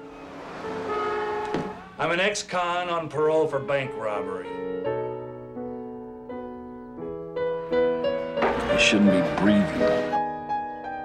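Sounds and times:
soft music: 0.0s - 11.0s
car horn blaring: 0.1s - 2.1s.

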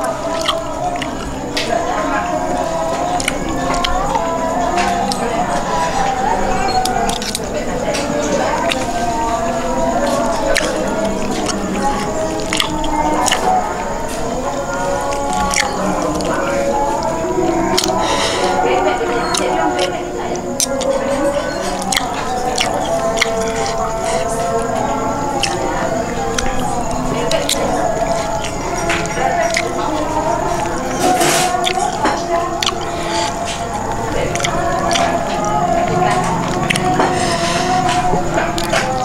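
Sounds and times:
background music with singing: 0.0s - 39.0s
wet chewing: 0.0s - 39.0s.

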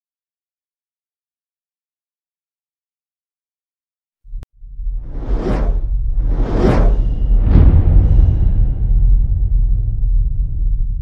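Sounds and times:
deep rumble: 4.3s - 11.0s
whooshes: 4.9s - 11.0s.

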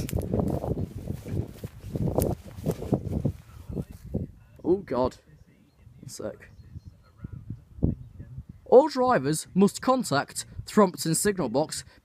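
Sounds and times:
phone rustling: 0.0s - 4.0s
footsteps on gravel: 0.0s - 4.1s.

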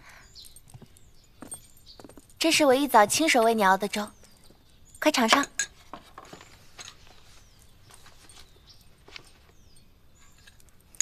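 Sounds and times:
bird chirps: 0.0s - 2.3s, 3.5s - 5.4s.

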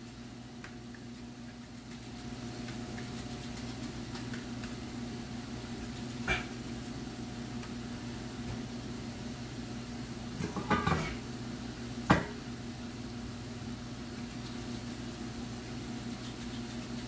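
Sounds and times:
kitchen appliance hum: 0.0s - 17.0s.

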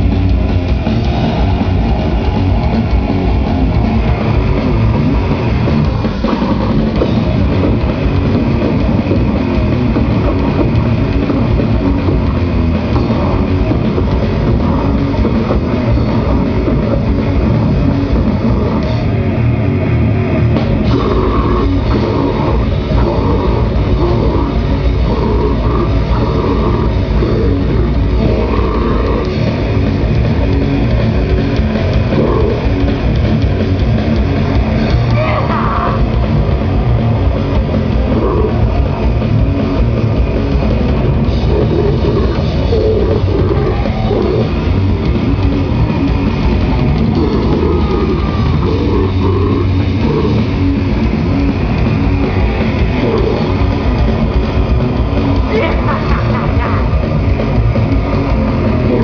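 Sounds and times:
distorted guitar and bass: 0.0s - 59.0s
fast pounding drums: 0.0s - 59.0s
vocalist shouting: 35.0s - 36.2s, 55.4s - 57.0s.

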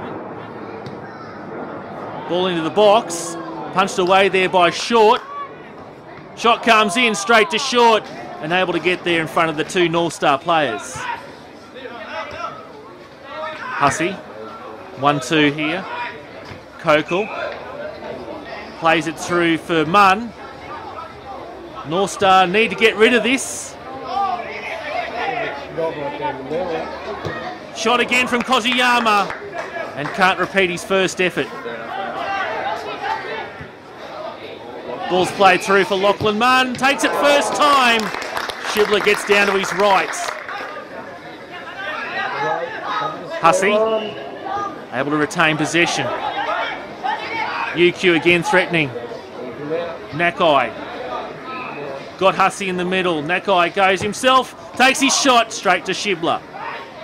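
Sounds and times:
voices chattering and calling out: 0.0s - 57.0s
commentary voice: 43.4s - 44.3s.

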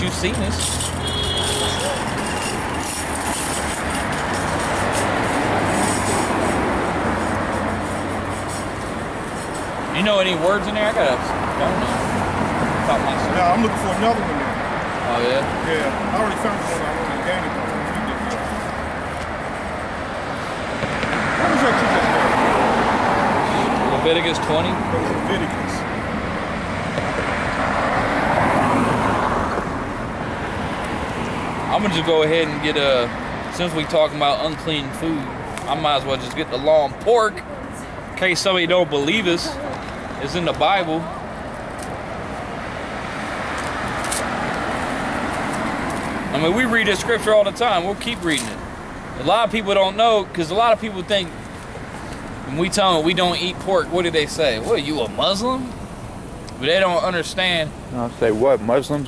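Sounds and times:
vehicle passing on street: 0.0s - 59.0s.

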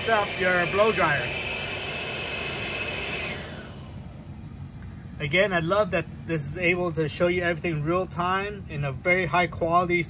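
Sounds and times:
hair dryer running: 0.0s - 4.2s
low hum: 2.4s - 9.2s.

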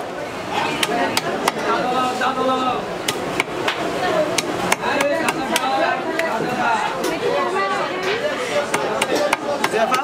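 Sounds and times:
market chatter: 0.0s - 10.0s.

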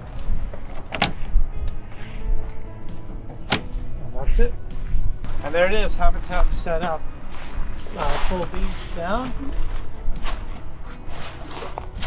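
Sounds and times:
faint background music: 0.0s - 12.0s
tent fabric rustling: 4.2s - 12.0s.

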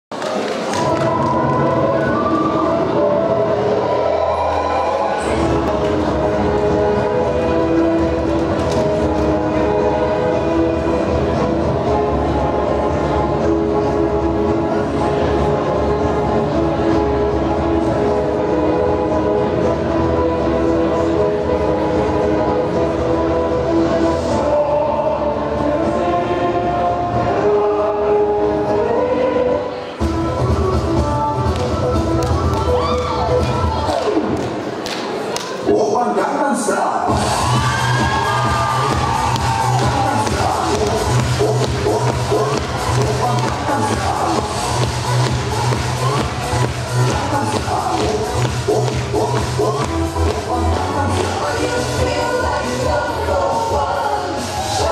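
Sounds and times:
music over sound system: 0.6s - 34.9s, 35.6s - 54.9s.

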